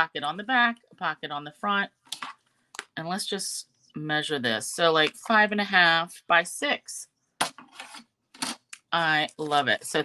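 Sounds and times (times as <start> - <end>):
paper and plastic sleeve rustling: 7.4 - 10.0.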